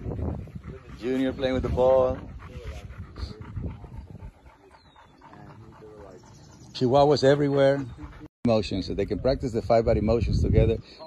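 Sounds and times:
faint voices: 0.0s - 8.3s
dog panting: 0.0s - 9.8s.

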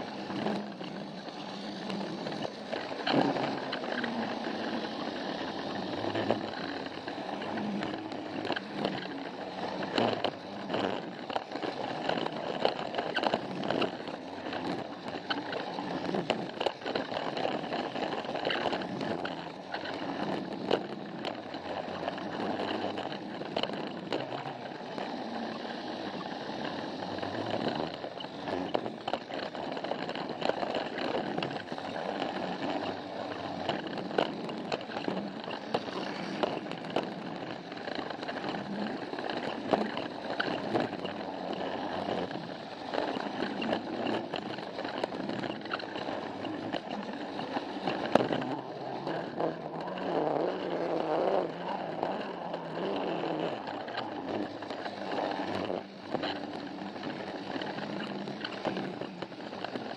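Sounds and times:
toy train motor whirring: 0.0s - 59.9s
wheels clicking over track joints: 0.0s - 59.9s.

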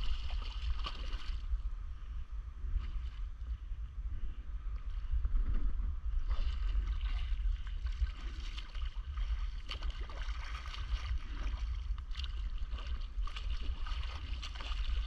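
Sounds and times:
water splashing around a paddleboard: 0.0s - 1.5s, 6.2s - 15.0s
wind rumble on microphone: 0.0s - 15.0s.

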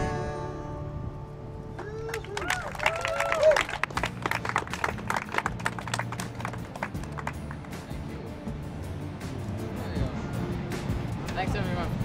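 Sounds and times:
audience clapping: 1.8s - 8.0s.

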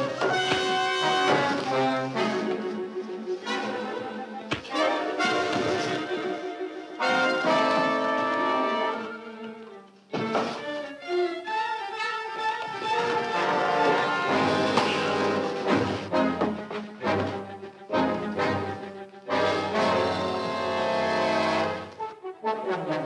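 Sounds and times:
dramatic orchestral music: 0.0s - 23.0s.

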